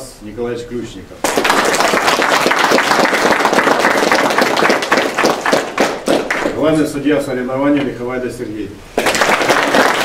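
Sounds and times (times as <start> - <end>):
crowd applauding: 1.2 - 6.6, 9.0 - 10.0.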